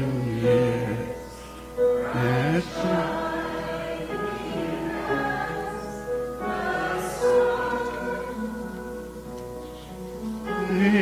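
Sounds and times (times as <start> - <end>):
choir singing slowly: 0.0 - 11.0.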